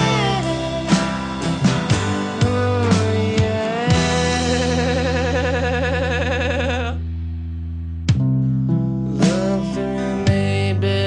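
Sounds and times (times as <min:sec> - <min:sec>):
ringing guitar chord: 0:00.0 - 0:05.7
live rock band music: 0:00.0 - 0:06.4, 0:08.1 - 0:10.7.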